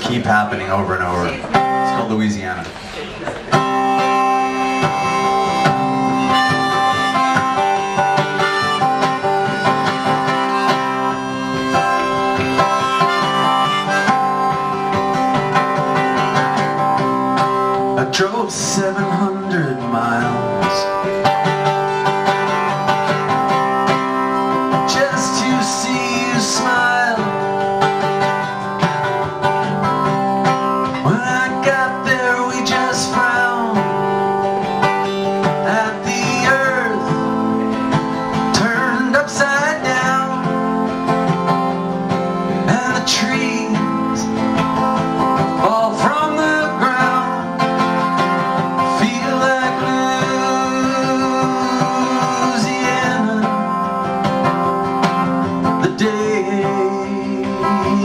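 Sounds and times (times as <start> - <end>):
acoustic guitar strumming: 0.0 - 58.0
man singing: 3.5 - 15.3, 16.0 - 21.4, 22.3 - 28.4, 30.5 - 55.0, 55.6 - 58.0.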